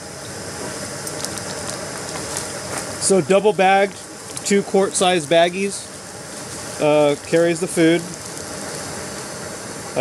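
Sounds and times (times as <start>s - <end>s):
camping stove burning: 0.0s - 10.0s.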